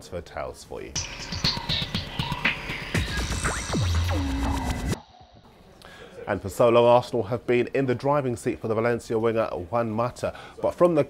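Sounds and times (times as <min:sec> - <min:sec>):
electronic transition sting: 0:01.0 - 0:05.3.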